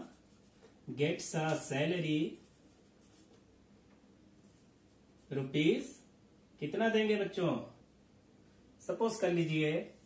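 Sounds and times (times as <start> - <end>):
marker pen writing on whiteboard: 0.0 - 3.6
man talking: 0.9 - 2.4, 5.3 - 6.0, 6.6 - 7.7, 8.8 - 10.0.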